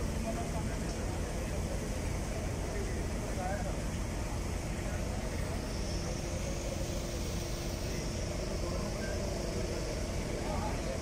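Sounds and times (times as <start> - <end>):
diesel engine rumbling: 0.0 - 11.0.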